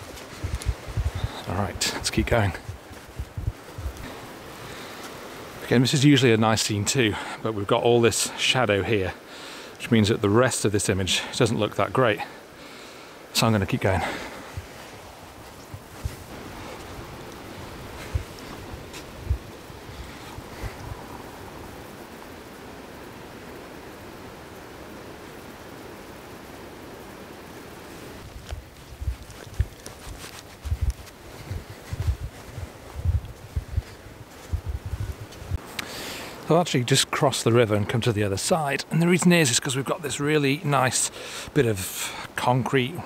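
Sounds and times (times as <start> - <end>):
flowing river water: 0.0 - 30.6
low thumps: 2.6 - 4.1.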